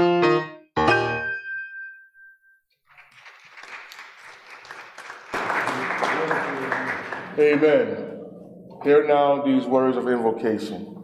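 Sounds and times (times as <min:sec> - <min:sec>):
congregation applauding: 0:02.9 - 0:08.0.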